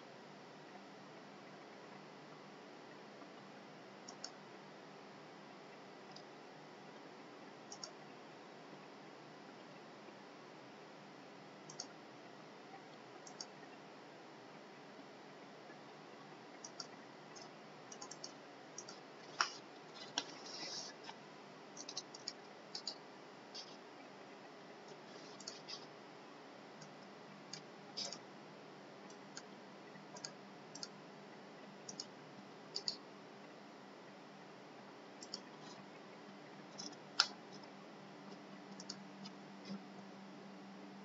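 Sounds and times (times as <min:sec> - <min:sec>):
faint steady hiss: 0:00.0 - 0:41.0
computer mouse double-clicks: 0:04.1 - 0:04.4, 0:07.7 - 0:08.0, 0:11.7 - 0:11.9, 0:13.2 - 0:13.5, 0:16.6 - 0:20.8, 0:21.8 - 0:23.0, 0:26.8 - 0:28.2, 0:30.2 - 0:30.9, 0:31.9 - 0:32.1, 0:32.8 - 0:33.0, 0:38.7 - 0:39.0.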